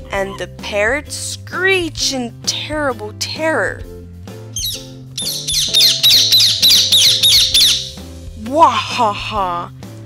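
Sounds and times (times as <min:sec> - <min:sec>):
background music: 0:00.0 - 0:10.0
parrot squawking: 0:04.6 - 0:08.0.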